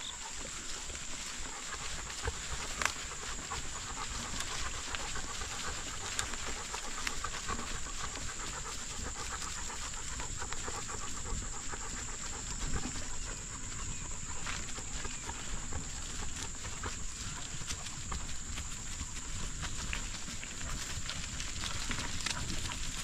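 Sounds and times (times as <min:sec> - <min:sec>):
dog panting: 0:00.0 - 0:23.0.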